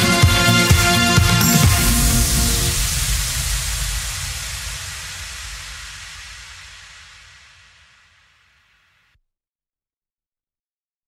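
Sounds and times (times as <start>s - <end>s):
electro-pop music: 0.0s - 4.8s
low bass rumble: 0.4s - 8.6s
electronic white-noise sweep: 1.0s - 9.1s.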